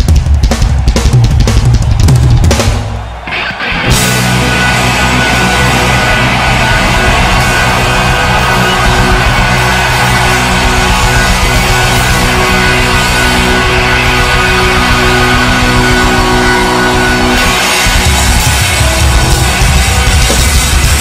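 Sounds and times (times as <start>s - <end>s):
drum kit hitting hard: 0.0s - 21.0s
live rock band playing: 0.0s - 21.0s.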